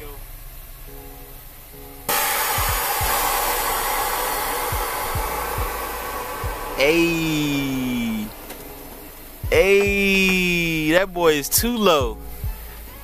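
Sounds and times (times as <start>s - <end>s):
air venting hiss: 0.0s - 13.0s.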